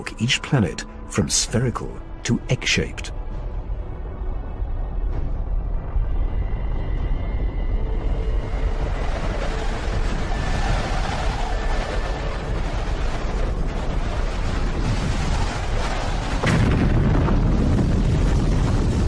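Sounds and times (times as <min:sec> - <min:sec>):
deep continuous rumbling: 0:00.0 - 0:19.0.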